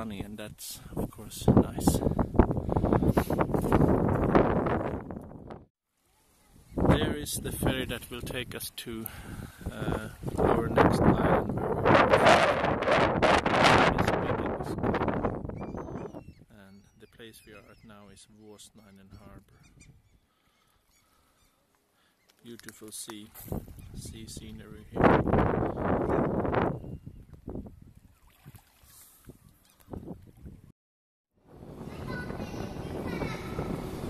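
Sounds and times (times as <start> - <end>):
wind buffeting microphone: 0.8 - 5.7, 6.6 - 8.4, 9.1 - 16.5, 19.1 - 20.2, 23.4 - 28.6, 29.3 - 30.7, 31.4 - 34.0.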